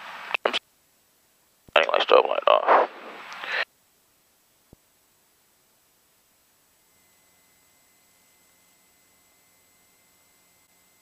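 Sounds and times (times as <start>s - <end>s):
man's voice over headset: 1.7s - 2.9s.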